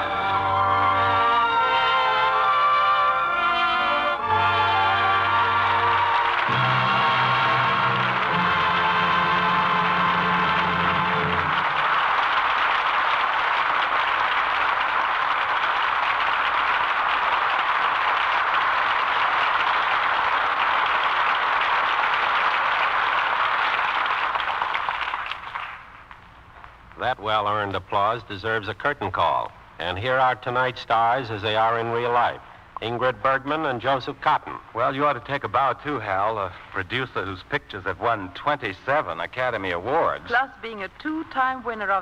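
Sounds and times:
music with sustained chords: 0.0 - 12.2
audience applauding: 4.2 - 26.2.

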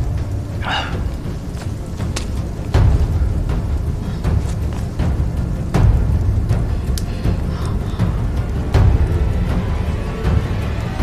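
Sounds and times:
ominous score with heavy drums: 0.0 - 11.0.

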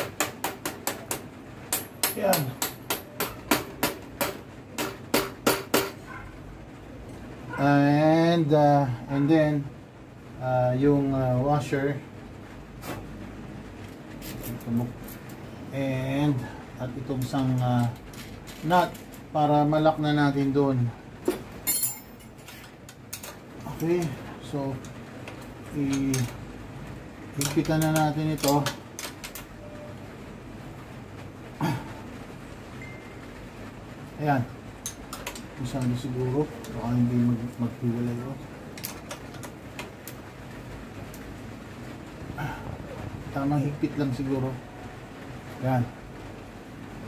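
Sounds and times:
metallic clink of hardware: 21.6 - 22.6
wrenches clicking on a bolt: 27.4 - 29.5.

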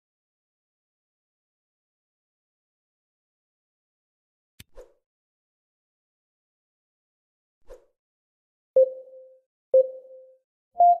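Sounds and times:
short electronic beeps: 8.8 - 11.0.

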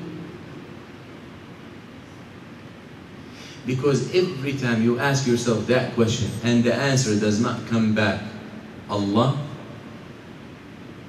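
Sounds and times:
room and microphone hiss: 0.0 - 11.0
man speaking: 3.7 - 9.6.

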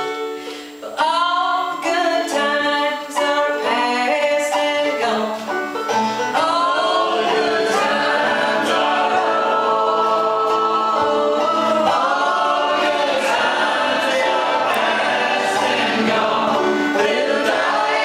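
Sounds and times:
group singing in harmony: 6.1 - 18.0.

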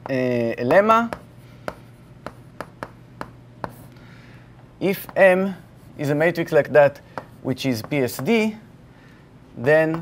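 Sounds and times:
chalk tapping on blackboard: 0.0 - 3.9, 7.1 - 8.5.

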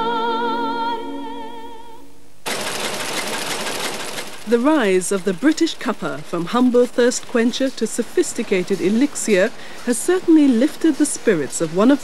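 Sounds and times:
packing machine clattering: 2.5 - 12.0.

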